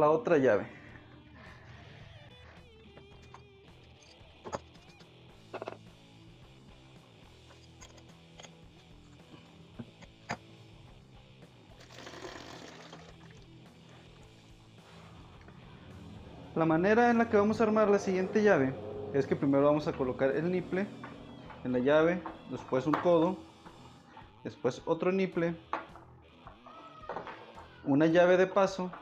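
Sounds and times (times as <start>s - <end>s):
quiet background music: 0.0s - 29.0s.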